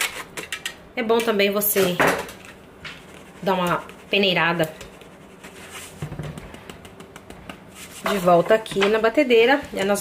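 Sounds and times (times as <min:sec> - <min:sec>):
sieve tapping: 0:06.0 - 0:07.7.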